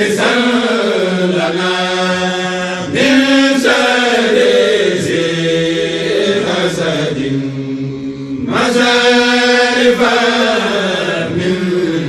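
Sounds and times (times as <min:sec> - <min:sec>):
person chanting devotional poem: 0:00.0 - 0:12.0.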